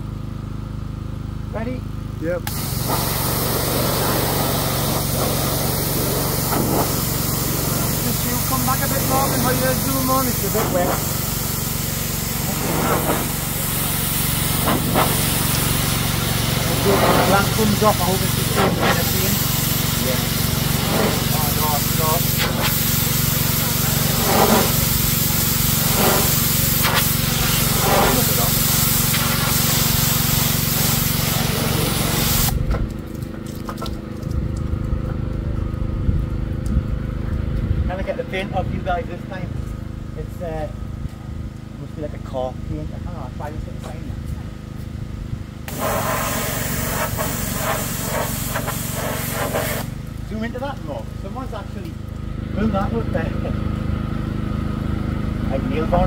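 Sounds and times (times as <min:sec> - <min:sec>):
pressure washer machine hum: 0:00.0 - 0:42.7, 0:43.8 - 0:56.0
pressure washer spray hissing on metal: 0:02.5 - 0:32.6, 0:45.6 - 0:52.1.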